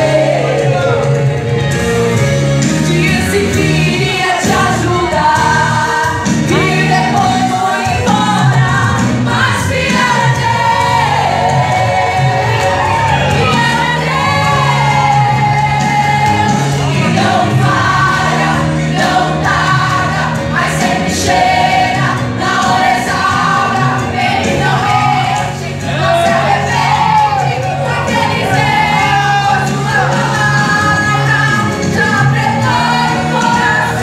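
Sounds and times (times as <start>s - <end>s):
church band playing: 0.0s - 34.0s
women singing gospel duet: 0.0s - 34.0s.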